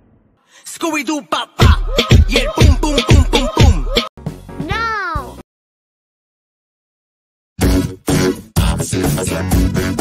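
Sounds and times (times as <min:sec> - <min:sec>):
music: 0:01.6 - 0:05.4, 0:07.6 - 0:10.0.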